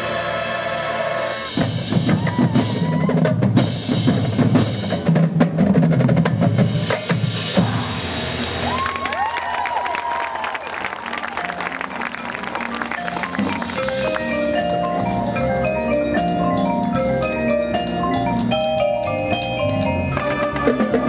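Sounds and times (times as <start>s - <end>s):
marching band playing: 0.0s - 21.0s
percussion ensemble playing: 0.0s - 21.0s
drum line: 1.5s - 14.5s.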